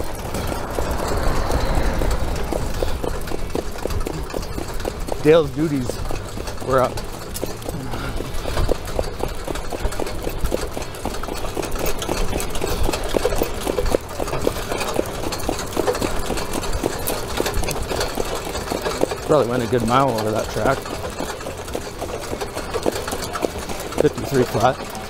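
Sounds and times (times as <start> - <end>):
horse hoofbeats on dirt: 0.0 - 25.0
sulky rattling: 0.0 - 25.0.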